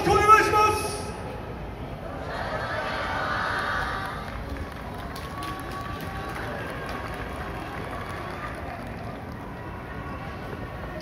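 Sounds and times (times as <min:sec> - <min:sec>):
low crowd murmur: 0:00.8 - 0:11.0.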